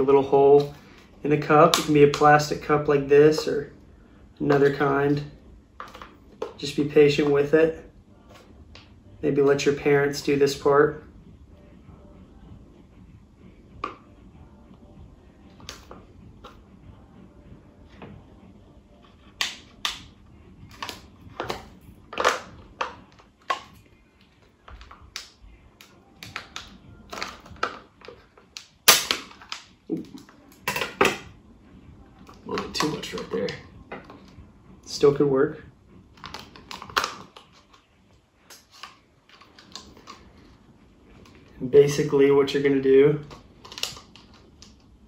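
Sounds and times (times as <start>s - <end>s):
plastic cup crackling and clicking: 20.7s - 30.7s, 36.2s - 37.9s, 38.5s - 40.5s, 43.2s - 44.9s.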